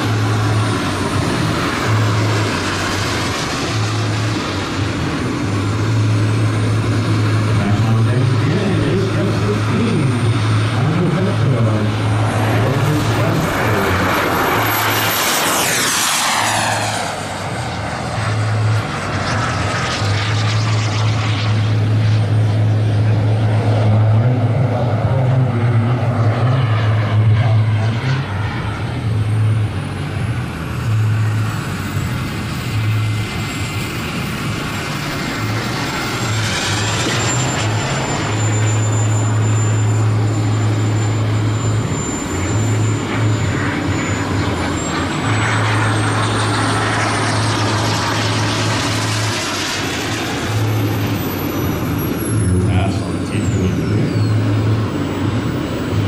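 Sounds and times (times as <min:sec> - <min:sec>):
jet turbine engine whine: 0:00.0 - 0:56.0
loud low hum: 0:00.0 - 0:56.0.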